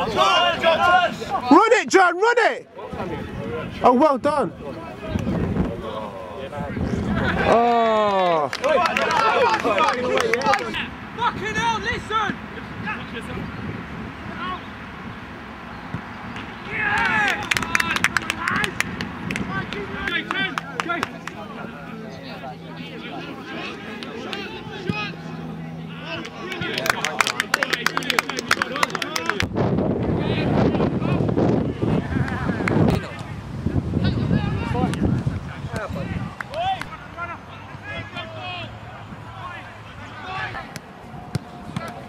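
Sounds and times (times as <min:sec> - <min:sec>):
people shouting and calling out: 0:00.0 - 0:05.1, 0:16.6 - 0:27.2, 0:34.0 - 0:40.8.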